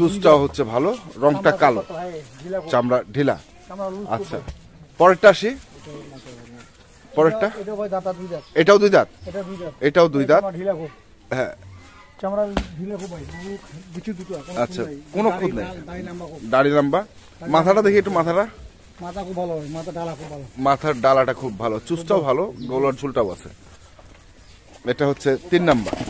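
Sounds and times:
man speaking: 0.0 - 11.6, 12.2 - 23.6
man talking: 0.0 - 11.6, 12.2 - 23.6, 24.8 - 26.0.

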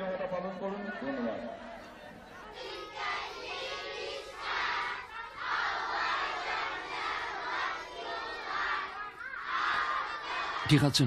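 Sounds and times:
crowd of children shouting: 2.3 - 11.0.

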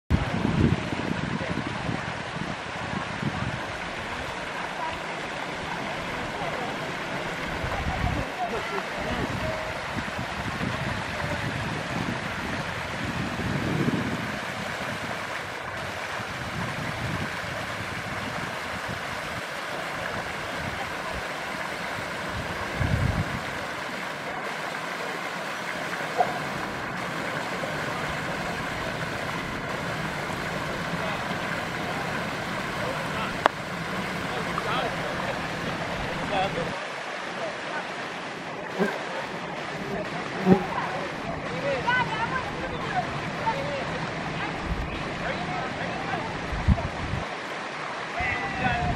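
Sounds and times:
wind rumble on microphone: 0.1 - 4.5, 7.3 - 8.4, 9.0 - 19.4, 21.9 - 23.7, 44.3 - 45.2, 46.2 - 47.4, 48.4 - 48.9
water splashing from aerator: 0.1 - 48.9.

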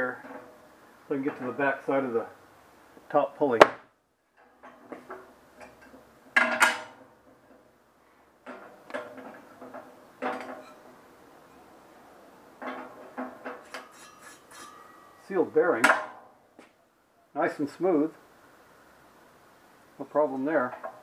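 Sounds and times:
metal clanks and scrapes: 0.1 - 0.6, 8.4 - 11.6, 12.6 - 15.2.

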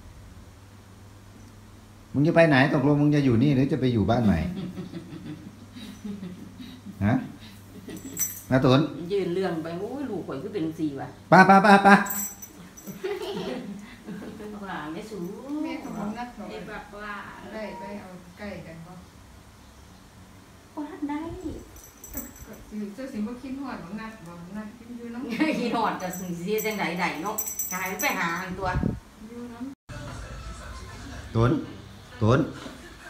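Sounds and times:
light metallic jingle: 7.8 - 9.0, 11.9 - 13.8, 14.9 - 16.7, 21.6 - 23.5, 25.4 - 28.7
woman speaking: 9.0 - 11.2, 13.4 - 19.1, 20.8 - 29.8.

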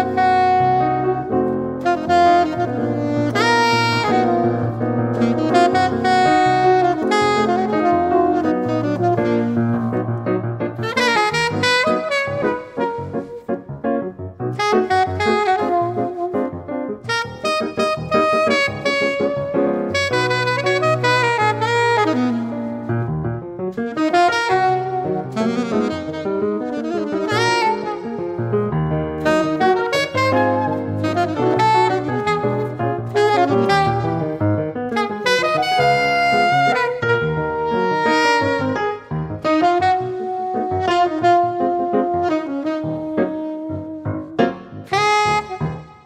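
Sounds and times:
jazz saxophone: 0.0 - 46.0
piano chords: 0.0 - 46.0.

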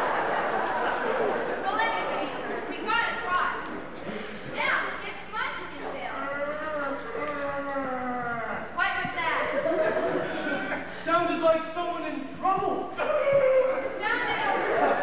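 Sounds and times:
actors' voices echoing in a hall: 0.0 - 15.0.

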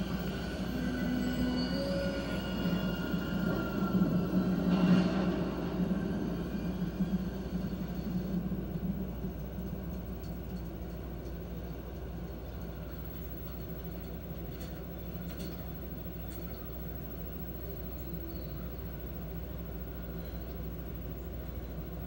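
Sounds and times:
low rumbling television music: 0.0 - 22.0
steady low hum: 0.0 - 22.0.

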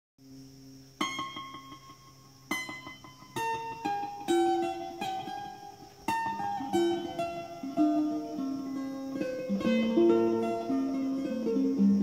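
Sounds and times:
mandolin playing: 1.0 - 12.0.

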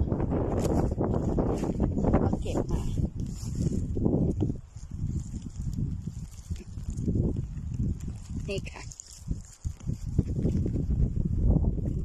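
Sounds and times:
phone microphone handling rumble: 0.0 - 12.0
rustling of shrubs: 0.0 - 12.0.

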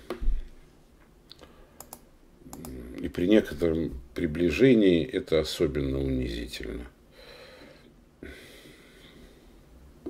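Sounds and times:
keyboard or mouse clicks: 1.8 - 2.8.

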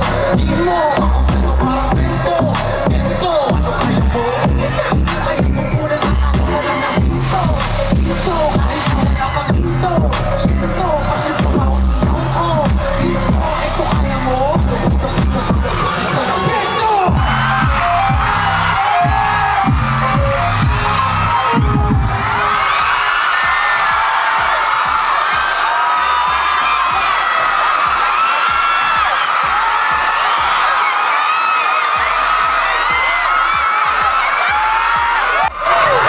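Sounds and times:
crowd screaming and cheering: 0.0 - 36.0
live pop music with heavy bass: 0.0 - 36.0.

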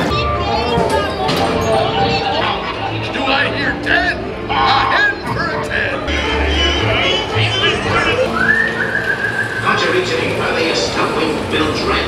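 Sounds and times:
animatronic voices: 0.0 - 12.0
ride soundtrack music: 0.0 - 12.0
long rising whistle: 8.1 - 10.0.

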